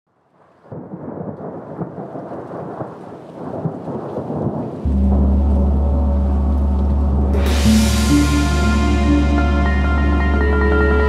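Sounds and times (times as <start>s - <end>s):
rain: 0.1s - 11.0s
thunder: 0.6s - 9.8s
deep steady drone: 4.9s - 11.0s.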